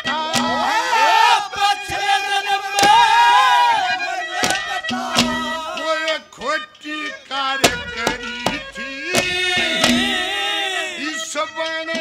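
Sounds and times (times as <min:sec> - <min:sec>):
instrumental accompaniment: 0:00.0 - 0:12.0
sharp percussive stroke: 0:02.8 - 0:03.2, 0:03.9 - 0:06.2, 0:07.6 - 0:10.5
man singing a held note: 0:08.8 - 0:11.2.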